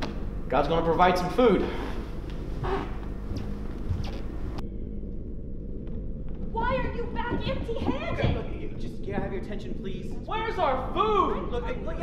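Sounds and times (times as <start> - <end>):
spaceship engine rumble: 0.0 - 12.0.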